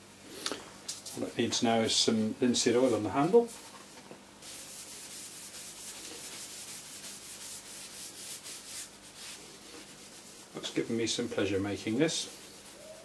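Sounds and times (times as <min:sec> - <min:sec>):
rag rubbing wooden handle: 0:11.8 - 0:13.0.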